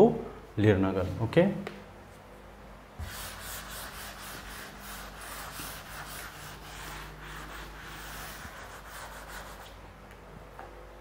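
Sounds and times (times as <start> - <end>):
duster rubbing on blackboard: 3.0 - 9.8.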